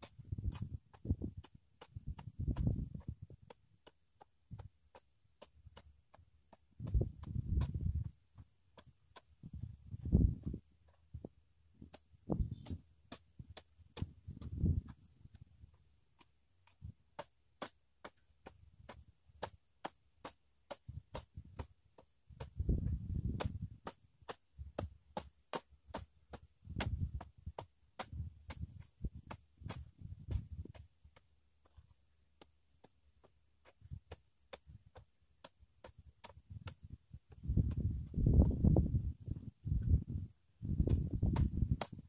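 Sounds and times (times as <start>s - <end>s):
hoe chopping into soil: 0.0s - 8.1s, 16.2s - 31.9s, 40.8s - 42.0s.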